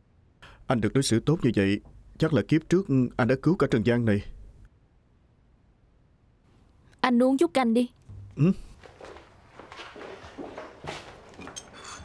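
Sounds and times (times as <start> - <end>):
person speaking: 7.0 - 9.1
soft footsteps on indoor floor: 8.1 - 12.0.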